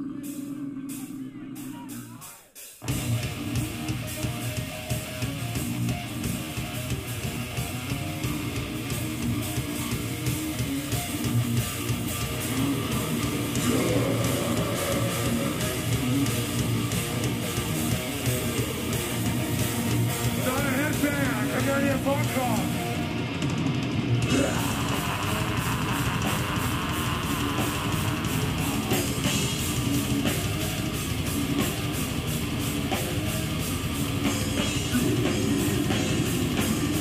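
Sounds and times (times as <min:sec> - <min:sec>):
bass guitar: 0:00.0 - 0:37.0
distorted electric guitars: 0:00.0 - 0:37.0
drums: 0:00.0 - 0:37.0.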